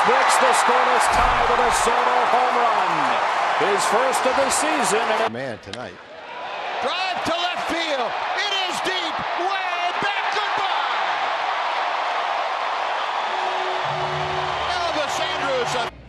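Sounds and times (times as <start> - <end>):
crowd cheering: 0.0 - 5.3, 6.0 - 15.9.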